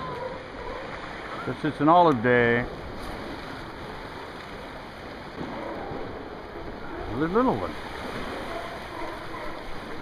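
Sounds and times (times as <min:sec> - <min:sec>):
wind and sea water rushing: 0:00.0 - 0:10.0.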